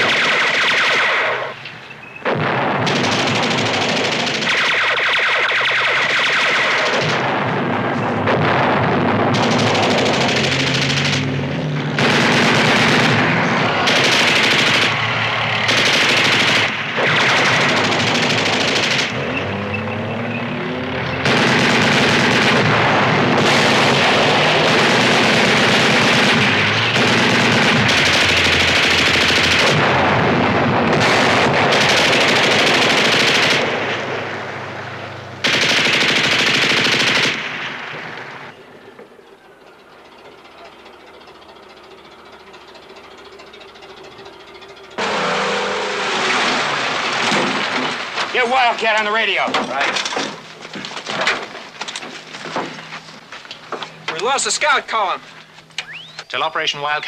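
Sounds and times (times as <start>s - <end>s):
machine-gun fire: 0.0s - 1.6s, 2.2s - 19.4s, 21.2s - 34.8s, 35.4s - 38.5s.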